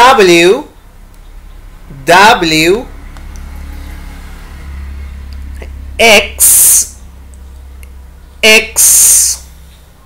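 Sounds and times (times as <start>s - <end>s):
low engine-like rumble: 0.1s - 10.0s.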